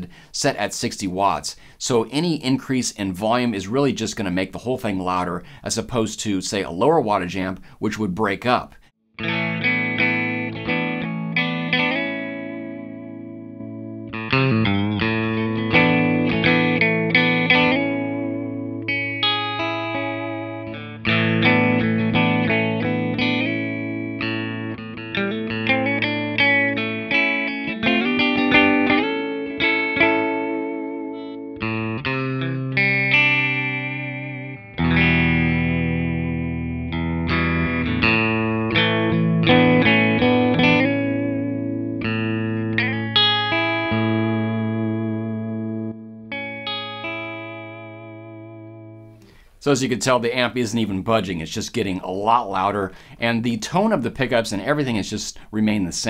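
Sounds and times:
loud clean electric guitar: 0:09.2 - 0:49.6.

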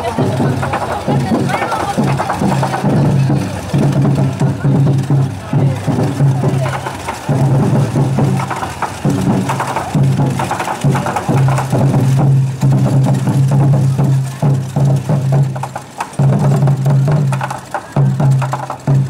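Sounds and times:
rapid wooden clicking percussion: 0:00.0 - 0:19.0.

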